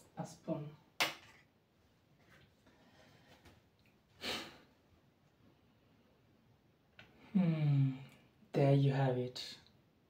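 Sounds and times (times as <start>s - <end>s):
person sniffing: 4.2s - 4.7s.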